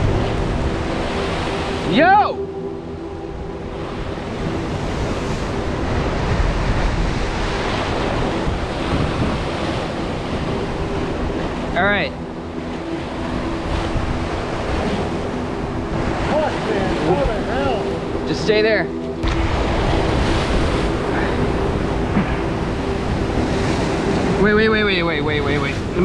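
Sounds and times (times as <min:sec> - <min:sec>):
wind buffeting microphone: 0:00.0 - 0:26.0.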